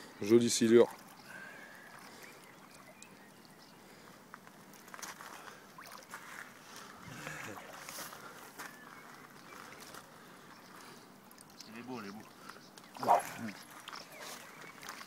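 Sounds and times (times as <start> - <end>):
water sloshing and splashing: 0.8 - 3.4, 5.7 - 8.3, 11.3 - 15.0.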